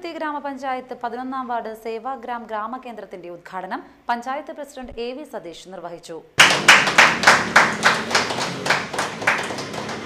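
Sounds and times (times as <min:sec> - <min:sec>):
group of people clapping: 0:06.4 - 0:10.0.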